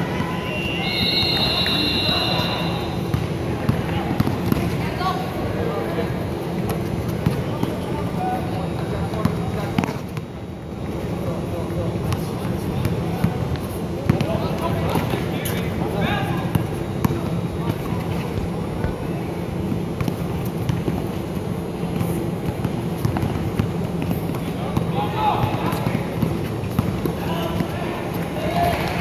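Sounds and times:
indistinct shouts: 0.0 - 3.0
crowd chatter: 0.0 - 29.0
basketball bouncing: 2.6 - 4.8, 14.1 - 15.1, 21.9 - 27.7.

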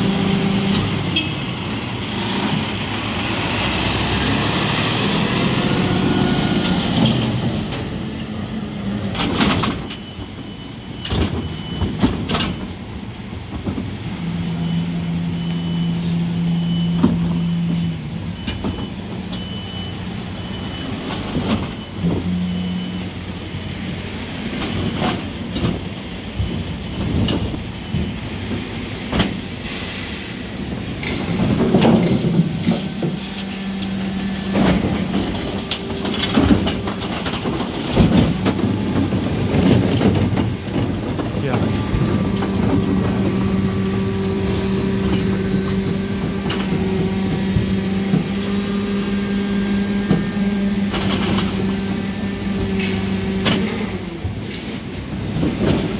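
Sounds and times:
diesel engine running: 14.0 - 55.9
bins banging: 30.7 - 48.6.

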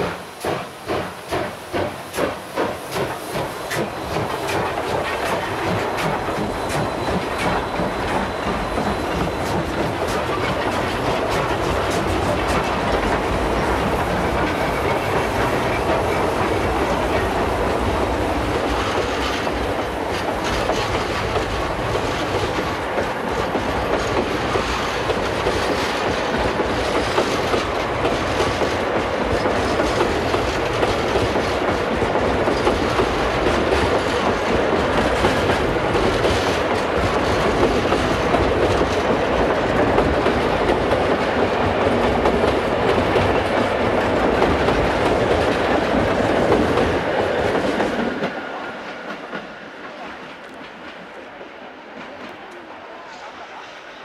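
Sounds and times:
steam train running: 0.0 - 54.0.

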